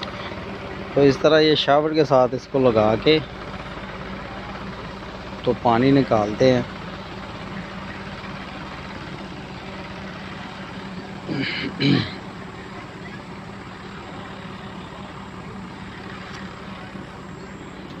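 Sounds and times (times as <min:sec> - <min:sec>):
tractor engine running: 0:00.0 - 0:18.0.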